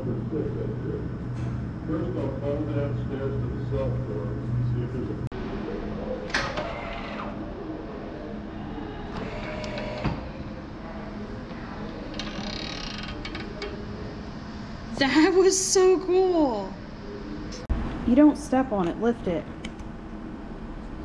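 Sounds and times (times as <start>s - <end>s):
low steady hum: 0.0s - 21.0s
locker door scraping: 6.3s - 7.4s, 9.1s - 10.5s.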